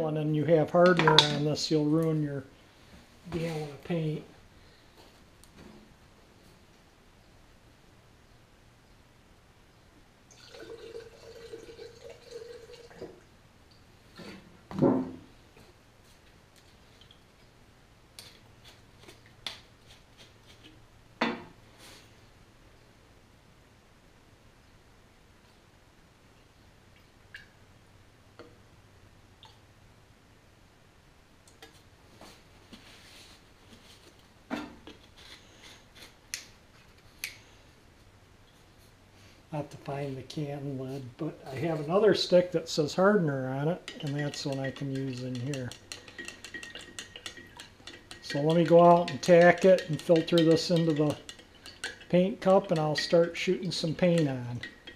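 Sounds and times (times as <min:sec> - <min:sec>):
liquid pouring into glass jar: 0:10.3 - 0:13.2
knock: 0:14.7 - 0:15.2.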